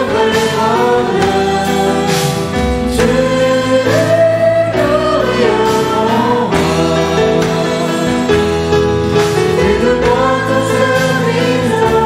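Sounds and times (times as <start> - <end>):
group singing a hymn: 0.0 - 12.0
instrumental accompaniment: 0.0 - 12.0.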